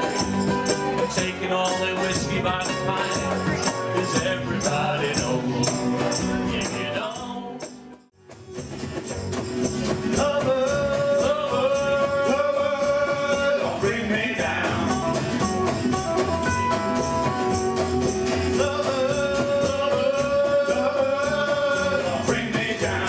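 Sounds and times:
plucked double bass: 0:00.0 - 0:23.0
strummed acoustic guitar: 0:00.0 - 0:23.0.

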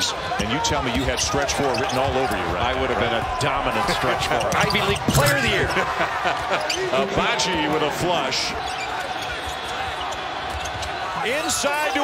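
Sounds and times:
arena noise: 0:00.0 - 0:12.0.

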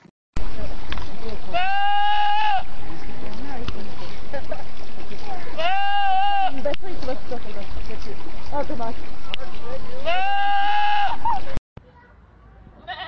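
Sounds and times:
goat screaming: 0:01.5 - 0:02.7, 0:05.6 - 0:06.6, 0:10.0 - 0:11.4.

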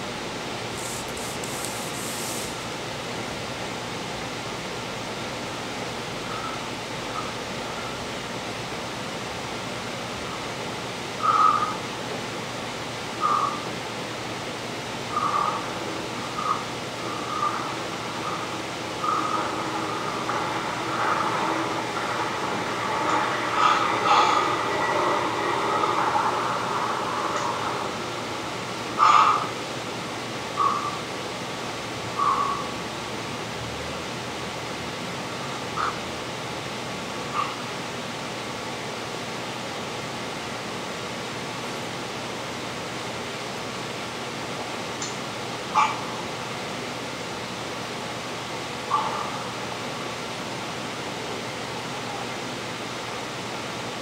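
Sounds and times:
room noise hiss: 0:00.0 - 0:54.0.

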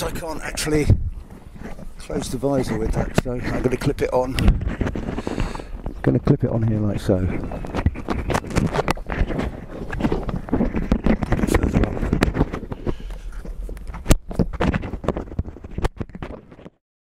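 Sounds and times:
microphone handling noise: 0:00.0 - 0:16.8.

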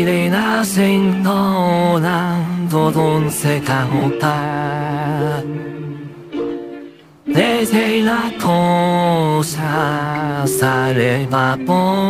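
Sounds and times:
synthetic male voice singing: 0:00.0 - 0:06.2, 0:07.3 - 0:12.0.

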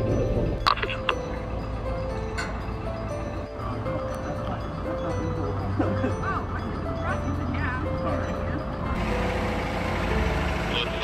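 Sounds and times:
background music with held notes: 0:00.0 - 0:11.0
diesel engine idling: 0:01.0 - 0:11.0.

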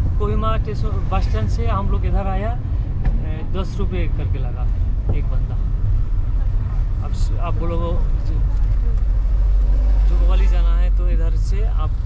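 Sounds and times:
van engine and tyres rumbling: 0:00.0 - 0:12.0.

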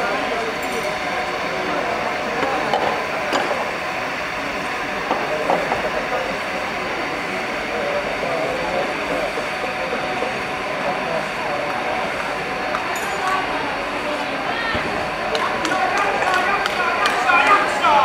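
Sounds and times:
steady background noise: 0:00.0 - 0:18.0
distant voices calling out: 0:02.9 - 0:18.0.

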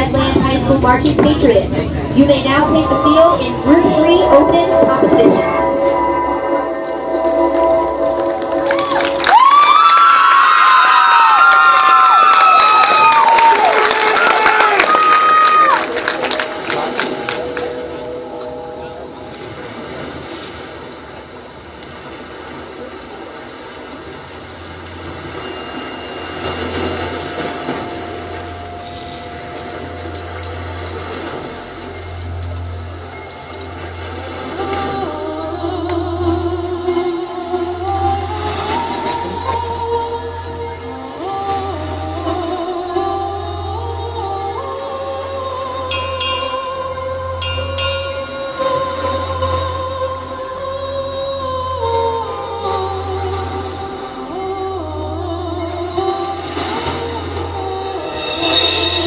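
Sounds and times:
low bass hum: 0:00.0 - 0:10.5, 0:15.9 - 0:59.0
crashing percussion: 0:58.1 - 0:59.0.

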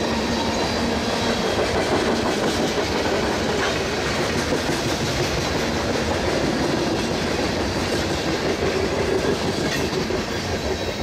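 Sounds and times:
freight train wheels rolling on rail: 0:00.0 - 0:11.0.

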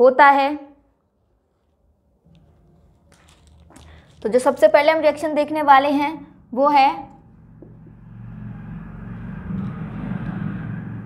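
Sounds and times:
passing vehicle rumble: 0:05.2 - 0:11.0.

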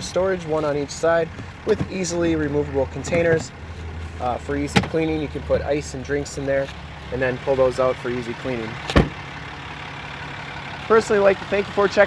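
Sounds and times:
diesel engine idling: 0:00.0 - 0:12.0
truck door thud: 0:04.7 - 0:05.2, 0:08.8 - 0:09.2.

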